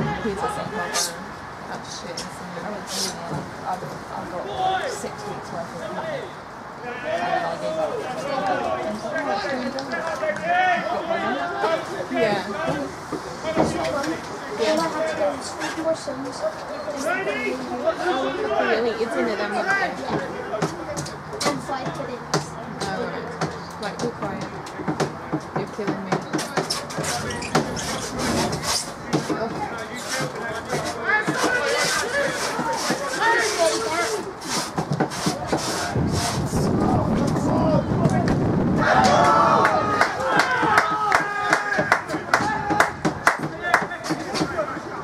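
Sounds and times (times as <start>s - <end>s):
voices calling out: 0.0s - 45.0s.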